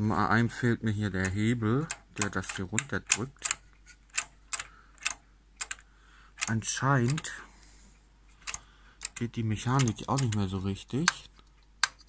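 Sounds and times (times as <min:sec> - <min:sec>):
floppy drive mechanism clicking: 0:01.2 - 0:07.4, 0:08.3 - 0:12.0.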